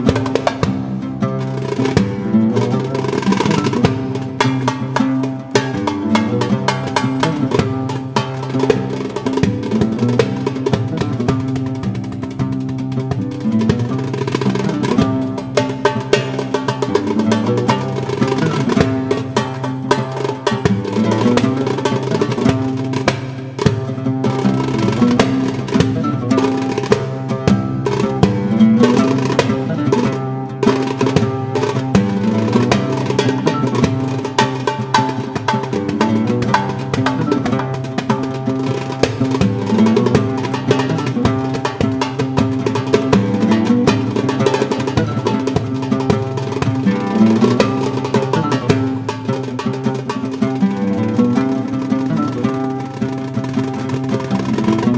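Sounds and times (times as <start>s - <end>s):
goblet drum played by hand: 0.0s - 54.9s.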